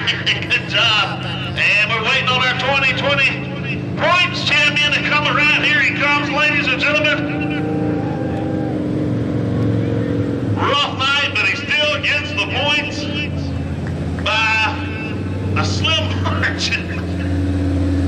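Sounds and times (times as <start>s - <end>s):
man talking: 0.0s - 7.6s, 10.6s - 13.6s, 14.2s - 17.3s
race car engine running: 0.0s - 18.0s.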